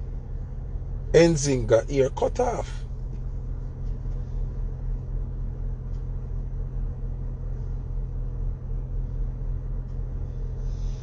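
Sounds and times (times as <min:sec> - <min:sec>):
car rumble inside cabin: 0:00.0 - 0:11.0.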